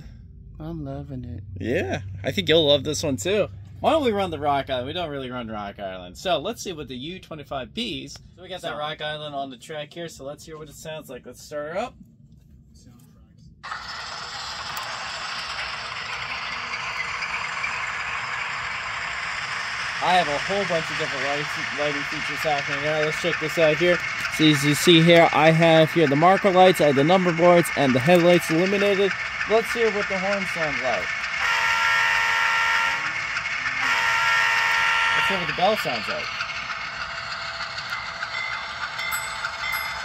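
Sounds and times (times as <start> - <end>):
model locomotive diesel sound: 0.0 - 11.8, 13.6 - 40.0
locomotive horn blasts from speaker: 31.4 - 33.2, 33.8 - 35.8.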